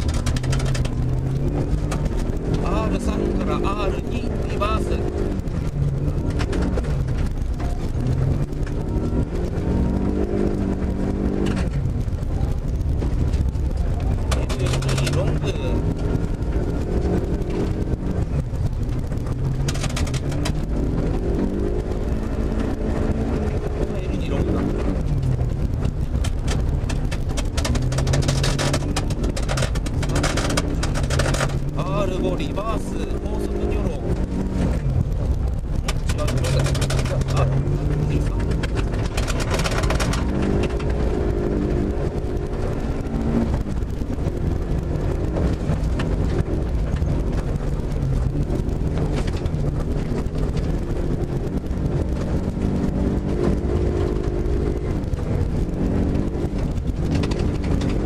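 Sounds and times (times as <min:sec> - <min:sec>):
car engine shifting through gears: 0:00.0 - 0:58.0.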